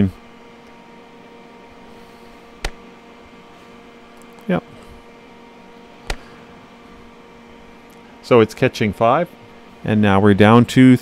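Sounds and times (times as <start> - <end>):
faint steady hum: 0.0 - 11.0
sharp click: 2.6 - 2.8, 6.0 - 6.3.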